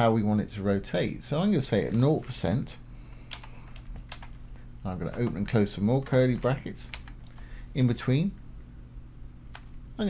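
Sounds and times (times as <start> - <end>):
keyboard keystrokes: 3.3 - 4.4, 5.1 - 7.2.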